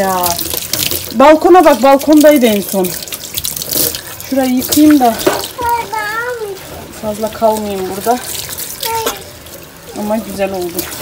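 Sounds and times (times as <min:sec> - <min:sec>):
tap water into steel sink: 0:00.2 - 0:05.9.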